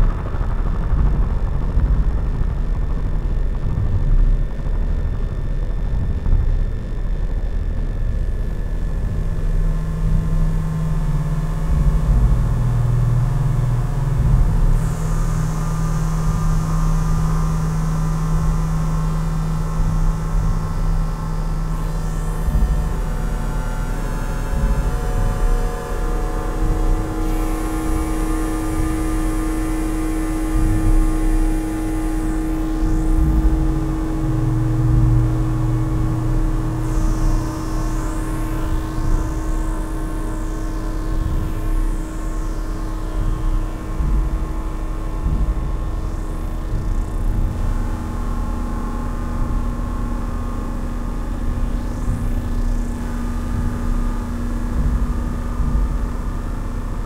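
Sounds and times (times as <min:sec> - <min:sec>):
deep low synth drone: 0:00.0 - 0:57.0
synthesizer held notes: 0:19.6 - 0:57.0.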